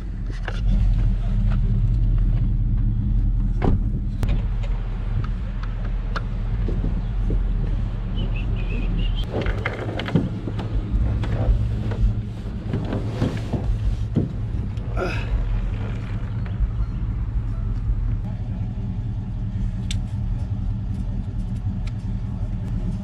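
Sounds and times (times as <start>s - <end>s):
car engine idling: 0.0s - 23.0s.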